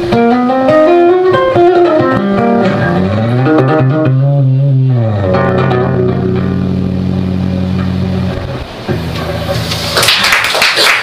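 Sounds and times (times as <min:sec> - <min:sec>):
low guitar chord ringing: 0:00.0 - 0:09.7.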